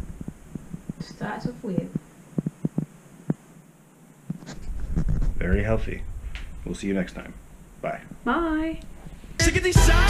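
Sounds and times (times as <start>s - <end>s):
low steady hum: 0.0s - 9.4s.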